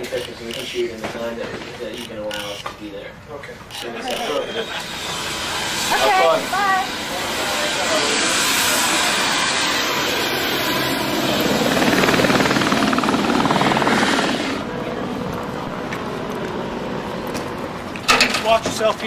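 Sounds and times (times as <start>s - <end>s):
helicopter rotor and turbine: 3.6s - 18.1s.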